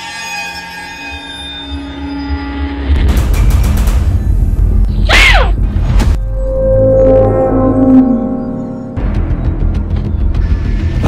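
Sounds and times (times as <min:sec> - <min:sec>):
sustained synthesized chord: 0:06.2 - 0:10.0.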